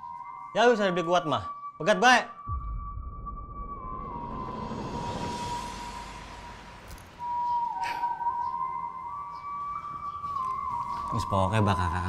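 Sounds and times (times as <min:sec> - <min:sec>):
sustained tone background music: 0:00.0 - 0:12.0.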